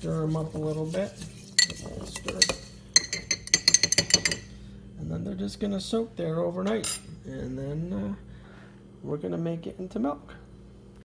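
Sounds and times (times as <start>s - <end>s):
metal spoon clinking against glass jar: 1.6s - 4.5s.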